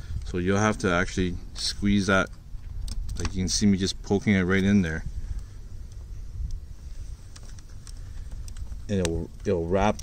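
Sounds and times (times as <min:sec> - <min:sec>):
wind rumble: 0:00.0 - 0:10.0
microphone handling noise: 0:04.9 - 0:10.0.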